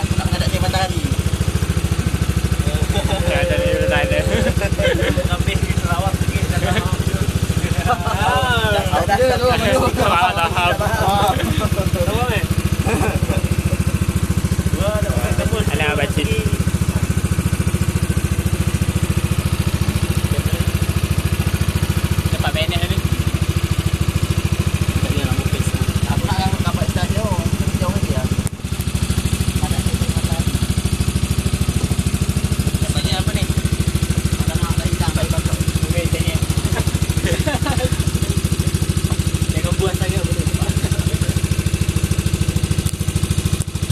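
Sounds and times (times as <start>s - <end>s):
boat motor droning: 0.0s - 43.9s.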